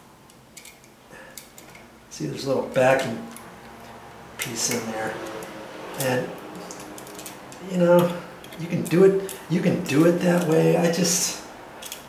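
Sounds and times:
wire handling noises: 0:00.0 - 0:12.0.

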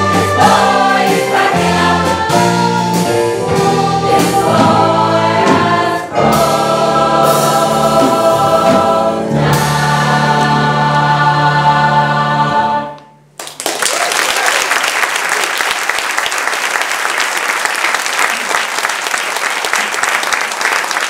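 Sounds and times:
mixed choir singing in harmony: 0:00.0 - 0:13.2.

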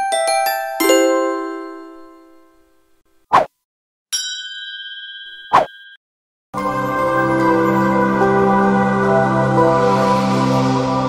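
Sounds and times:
notification bell ding: 0:04.2 - 0:06.0.

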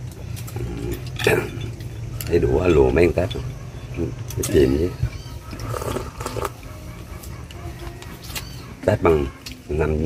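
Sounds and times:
slurping broth: 0:05.6 - 0:06.6.

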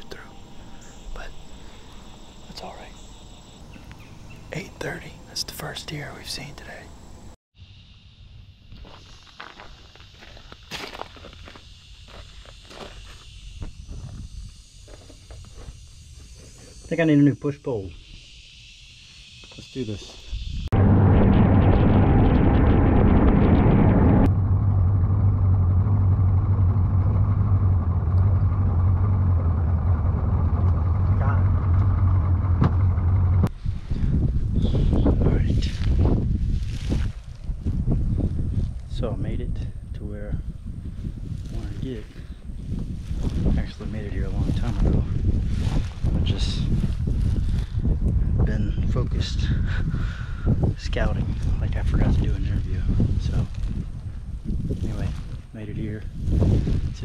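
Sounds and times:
footsteps crunching on gravel: 0:08.7 - 0:16.9
wind buffeting microphone: 0:20.4 - 0:57.0.

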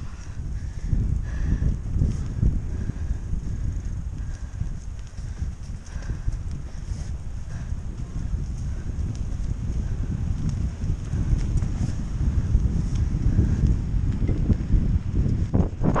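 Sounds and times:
bike tyres rumbling on dirt: 0:00.0 - 0:16.0
wind buffeting microphone: 0:00.0 - 0:16.0.

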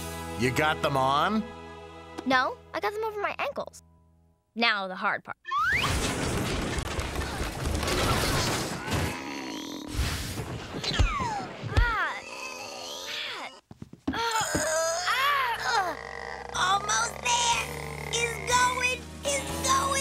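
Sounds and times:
music: 0:00.0 - 0:04.5, 0:16.6 - 0:20.0
girls grunting and groaning: 0:11.0 - 0:18.8.

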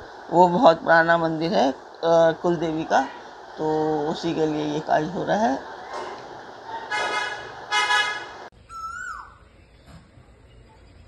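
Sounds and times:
vehicle horn toots: 0:06.9 - 0:08.5
bird call falling in pitch: 0:08.7 - 0:09.4.

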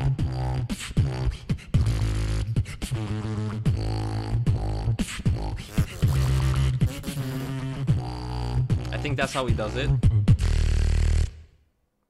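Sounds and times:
buzzing low beatbox bass note: 0:00.0 - 0:11.3
vocal percussion hits: 0:02.9 - 0:10.5.

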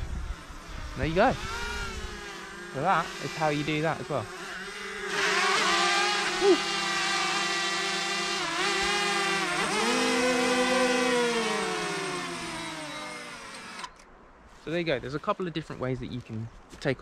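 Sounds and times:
drone propellers whining: 0:00.0 - 0:14.1.

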